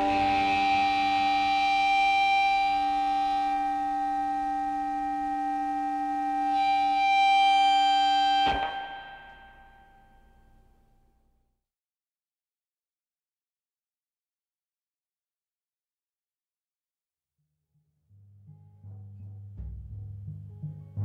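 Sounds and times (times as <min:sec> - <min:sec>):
distorted guitar chord with feedback: 0:00.0 - 0:10.5.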